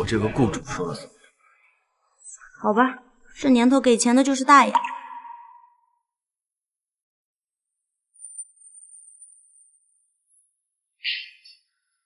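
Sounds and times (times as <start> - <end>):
high-pitched steady tone: 4.7 - 5.9.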